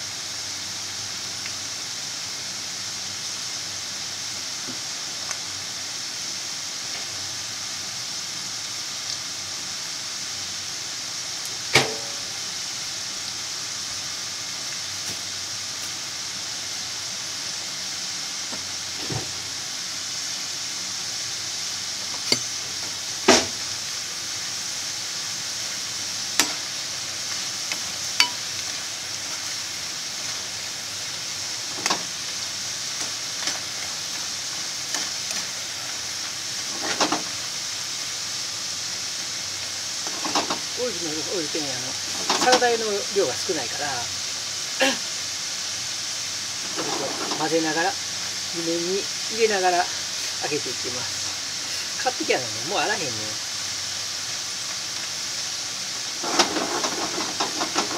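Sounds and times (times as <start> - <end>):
potatoes sizzling in hot oil: 0.0 - 57.9.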